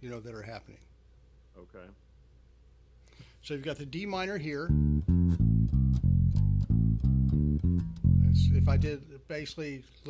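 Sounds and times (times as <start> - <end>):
electric bass plucked notes: 4.6 - 9.0.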